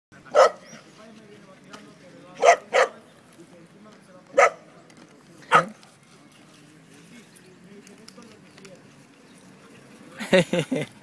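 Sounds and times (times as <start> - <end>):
dog barking: 0.3 - 0.7, 2.4 - 3.0, 4.4 - 4.6, 5.5 - 5.8.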